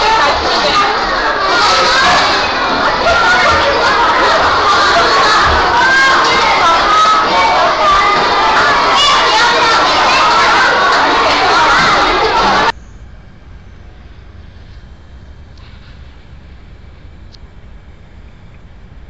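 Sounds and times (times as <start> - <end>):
children shouting and chattering: 0.0 - 12.8.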